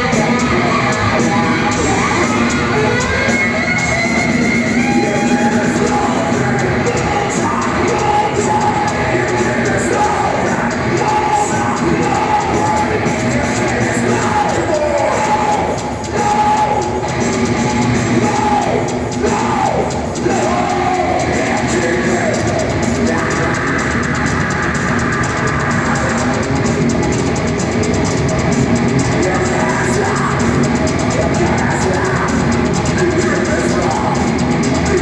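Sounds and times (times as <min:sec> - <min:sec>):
distorted electric guitar: 0:00.0 - 0:35.0
heavy metal band playing live: 0:00.0 - 0:35.0.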